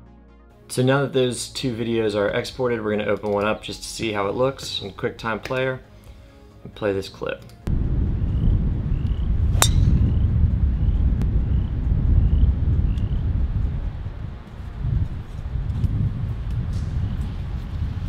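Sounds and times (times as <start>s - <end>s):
wind rumble on microphone: 7.7s - 18.0s
golf club striking ball: 9.5s - 10.2s.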